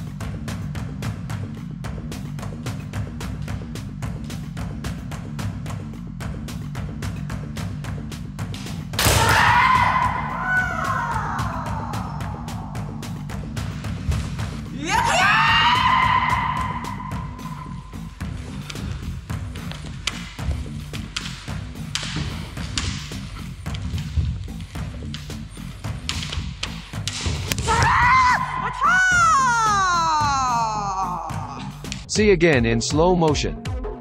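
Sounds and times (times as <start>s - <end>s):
background music with low beat: 0.0s - 34.0s
bamboo sword strikes thudding: 8.6s - 9.6s, 26.0s - 28.0s
kiai shout: 9.0s - 12.9s, 14.7s - 17.7s, 27.5s - 31.7s.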